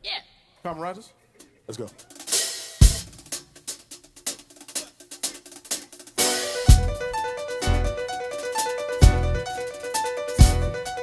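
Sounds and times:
hi-hat and snare pattern: 1.5s - 11.0s
bass drum hit: 6.6s - 8.0s, 9.0s - 9.5s.

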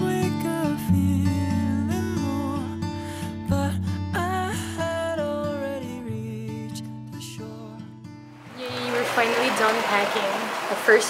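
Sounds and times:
soft guitar music: 0.0s - 8.8s
steady rain: 8.4s - 11.0s
woman talking: 8.5s - 11.0s.

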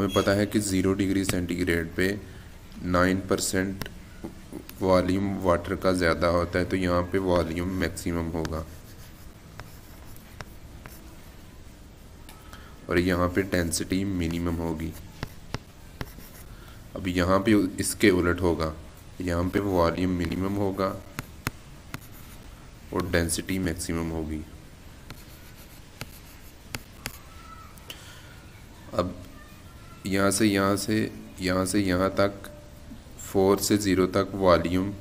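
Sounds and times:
low steady hum: 0.0s - 29.9s, 30.7s - 35.0s
faint steady hiss: 0.0s - 35.0s
stylus tapping: 1.2s - 1.5s, 3.7s - 4.8s, 15.0s - 16.4s, 21.0s - 23.2s, 25.0s - 27.3s
stylus scratching on tablet: 7.6s - 11.4s, 13.3s - 16.5s, 19.5s - 23.4s, 25.0s - 27.3s.

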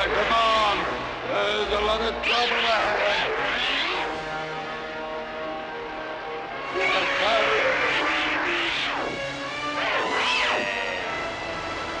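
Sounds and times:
background music: 0.0s - 12.0s
monster roar screeching: 9.8s - 11.2s.

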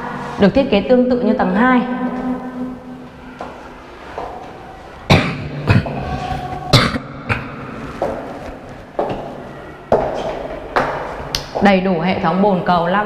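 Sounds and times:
person coughing: 5.1s - 6.1s, 6.7s - 7.7s
person clearing throat: 5.1s - 7.8s.

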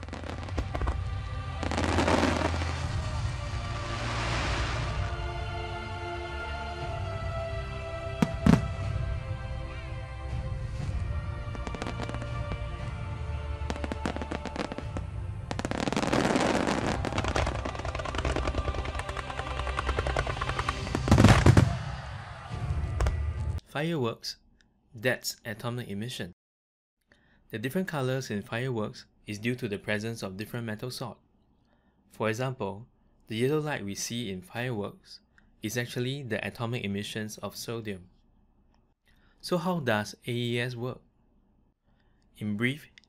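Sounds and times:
fireworks popping and crackling: 0.0s - 1.0s, 1.6s - 3.0s, 11.6s - 12.6s, 13.7s - 22.0s
music: 0.0s - 23.6s.

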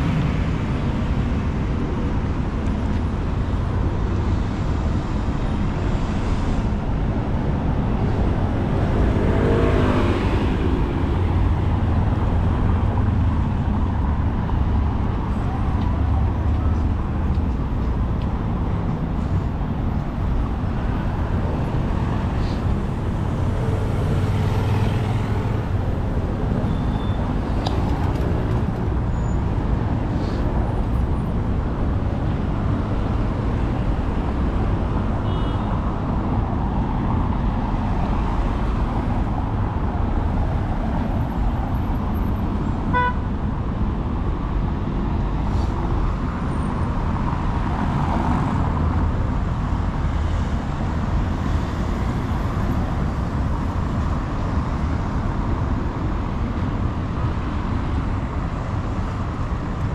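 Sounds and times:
traffic on cobblestones: 0.0s - 59.9s.

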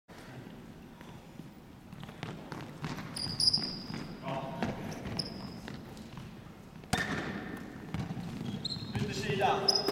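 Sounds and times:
sneakers squeaking: 1.0s - 9.9s.

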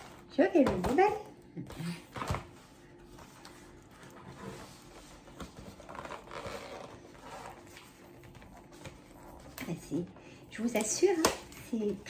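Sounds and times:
packaging rustling and scraping: 2.2s - 9.8s.

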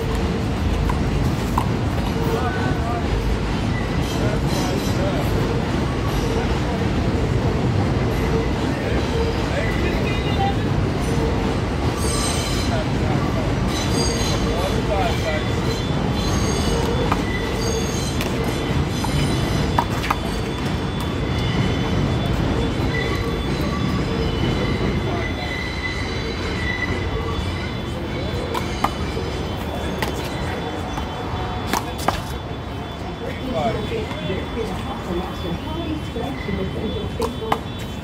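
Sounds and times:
train rumbling: 0.0s - 38.0s
wheels squealing on rails: 0.0s - 38.0s.

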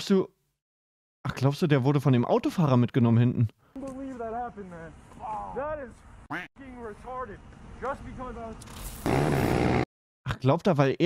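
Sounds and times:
people talking: 1.3s - 6.0s, 6.6s - 8.6s.

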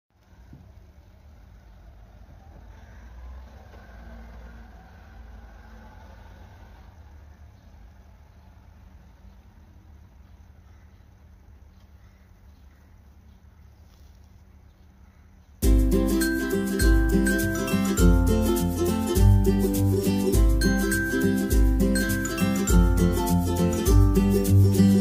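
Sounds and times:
low outdoor rumble: 0.1s - 25.0s.

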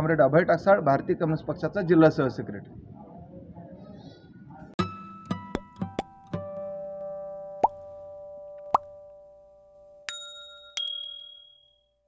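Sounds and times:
popping blips: 7.6s - 7.9s, 8.6s - 9.0s
bright high dings: 9.1s - 12.0s.

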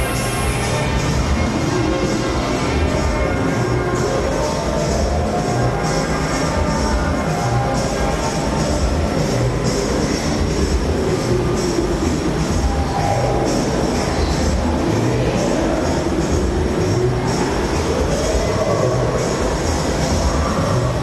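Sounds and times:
electronic trance dance music: 0.0s - 21.0s.

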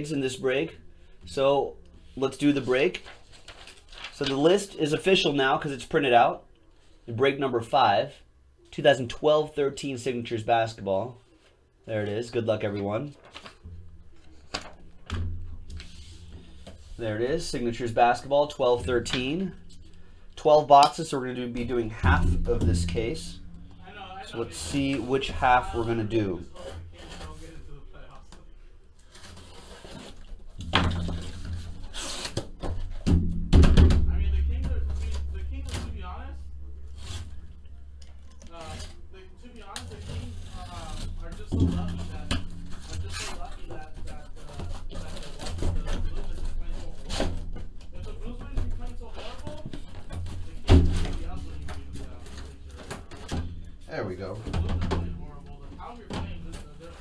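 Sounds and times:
boxes thunking down: 30.5s - 36.1s
cardboard rubbing and scraping: 31.0s - 32.6s.

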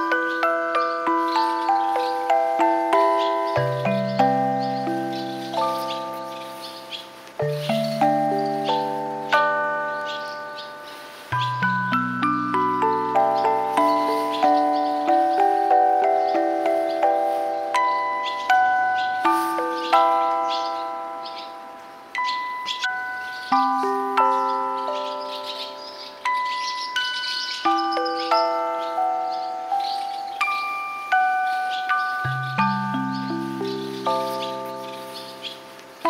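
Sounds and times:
gentle struck-note chords: 0.0s - 36.0s.

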